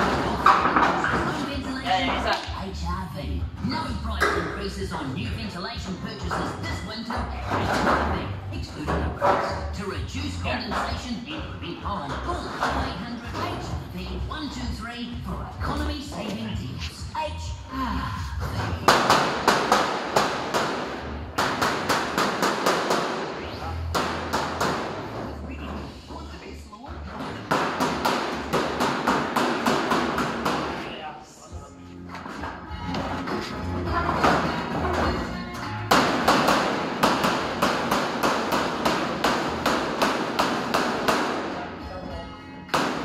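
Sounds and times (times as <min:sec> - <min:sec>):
hammer striking sheet metal: 0:35.9 - 0:41.6, 0:42.7 - 0:43.0.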